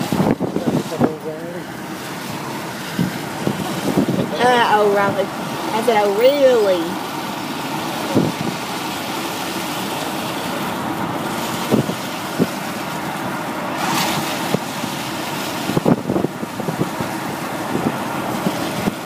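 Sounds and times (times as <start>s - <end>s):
car road and wind noise: 0.0s - 19.0s
wind buffeting microphone: 0.0s - 19.0s.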